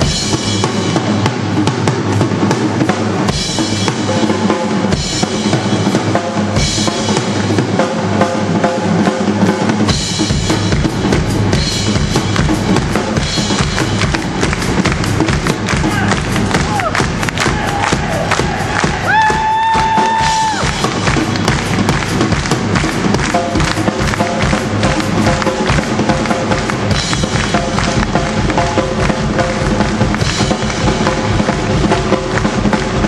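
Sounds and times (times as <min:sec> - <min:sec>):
drum kit beat: 0:00.0 - 0:33.0
live rock band playing: 0:00.0 - 0:33.0.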